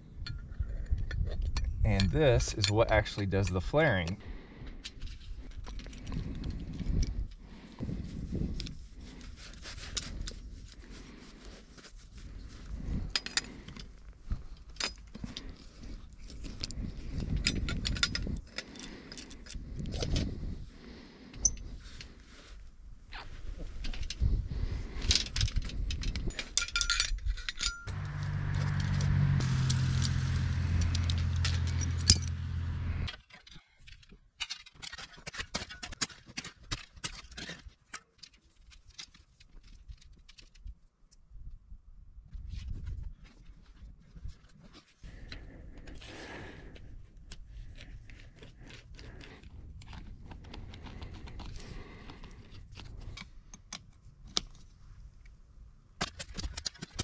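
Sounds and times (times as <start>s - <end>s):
metal tool clinks and scrapes: 0.2s - 4.2s, 13.0s - 13.9s, 14.5s - 20.3s, 21.4s - 22.1s, 25.0s - 39.3s
steady low hum: 27.9s - 33.1s.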